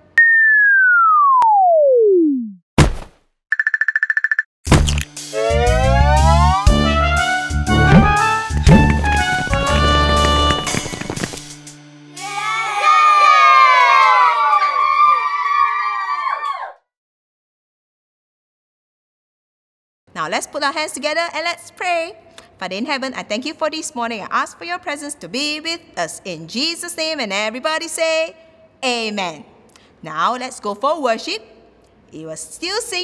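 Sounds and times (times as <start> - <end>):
cartoon falling whistle: 0.2 - 2.6, 5.4 - 6.9
children cheering and shouting: 12.2 - 16.8.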